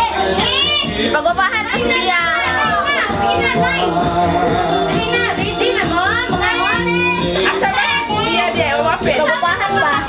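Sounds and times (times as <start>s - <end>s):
children chattering and calling out: 0.0s - 10.0s
music playing: 0.0s - 10.0s.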